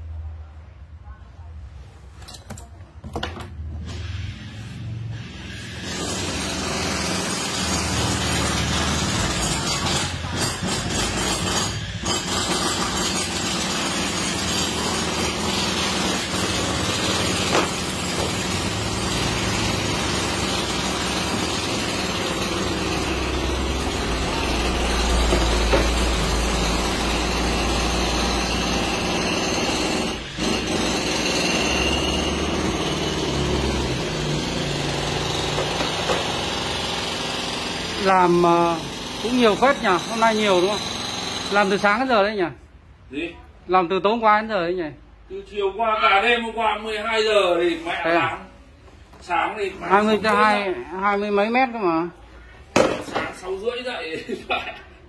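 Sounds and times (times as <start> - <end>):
machine motor running: 16.2 - 30.4.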